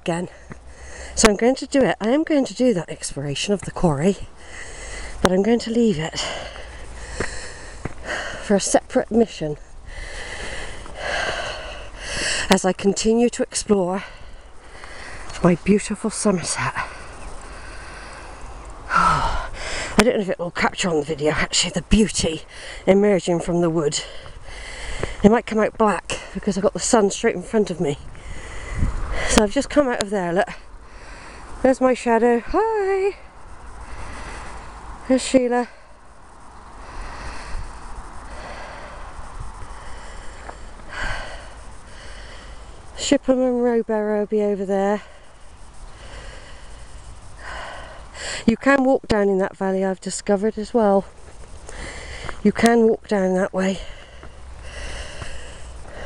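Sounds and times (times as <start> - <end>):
outdoor background noise: 0.0 - 56.0
person breathing heavily: 0.2 - 1.2, 4.2 - 5.3, 6.1 - 8.6, 9.4 - 12.5, 13.9 - 16.0, 16.8 - 20.0, 22.4 - 22.9, 23.9 - 25.3, 28.1 - 29.4, 30.5 - 31.6, 33.2 - 36.1, 36.7 - 43.0, 44.9 - 48.5, 51.4 - 52.4, 53.6 - 56.0.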